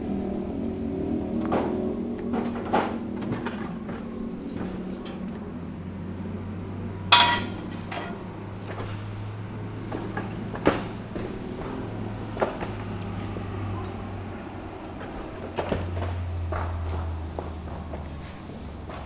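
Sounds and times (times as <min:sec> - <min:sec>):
steel pipes clanking: 0:02.3 - 0:05.5, 0:07.1 - 0:09.2
ringing metallic clang: 0:07.1 - 0:08.2
light metal knocks: 0:07.1 - 0:08.8.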